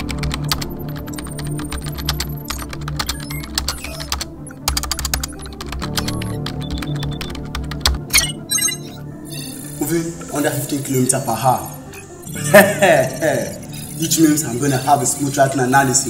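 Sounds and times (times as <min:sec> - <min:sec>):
rapid typing on keyboard: 0:00.0 - 0:08.1, 0:12.6 - 0:16.0.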